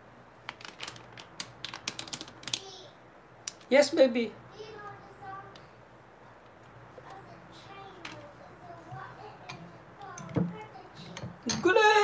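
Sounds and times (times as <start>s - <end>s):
plastic packet crinkling: 0.4s - 2.7s.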